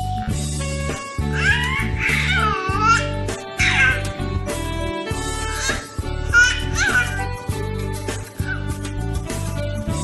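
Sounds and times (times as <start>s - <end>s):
background music: 0.0s - 10.0s
baby squealing: 1.2s - 4.3s, 5.3s - 7.6s, 8.3s - 8.8s.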